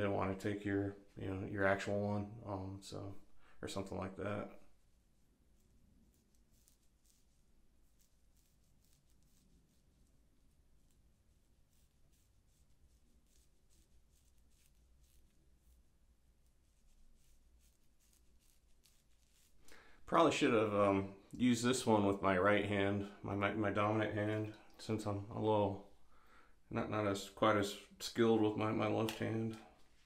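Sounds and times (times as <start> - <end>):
razor scraping through hair: 5.6 - 9.9, 16.4 - 19.6.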